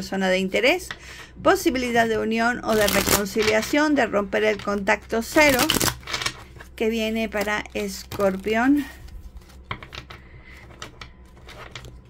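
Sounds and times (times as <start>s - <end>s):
cards being shuffled: 2.7s - 3.8s, 5.2s - 12.0s.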